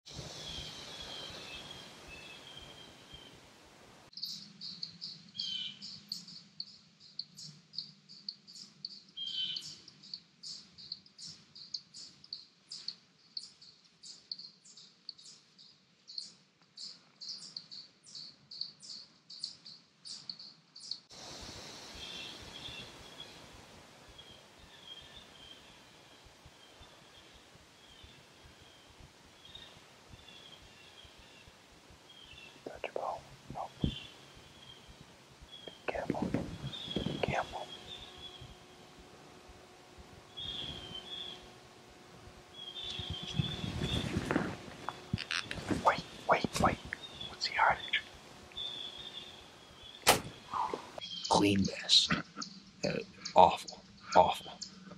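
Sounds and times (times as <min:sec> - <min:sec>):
bird chirping: 0:00.3 - 0:03.4, 0:04.1 - 0:21.1, 0:21.8 - 0:54.9
faint scattered chirps: 0:24.1 - 0:51.6.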